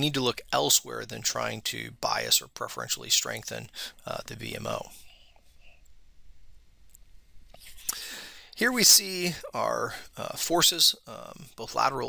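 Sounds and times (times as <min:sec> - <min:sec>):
soft breath or mouth noise: 0:05.0 - 0:06.0, 0:07.4 - 0:08.6.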